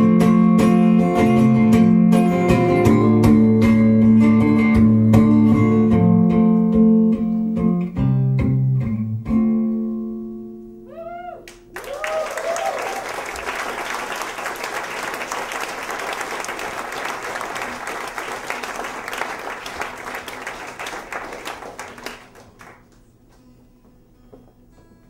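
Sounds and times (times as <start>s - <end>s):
whoops: 10.9s - 13.7s
audience applauding and cheering: 11.4s - 23.0s.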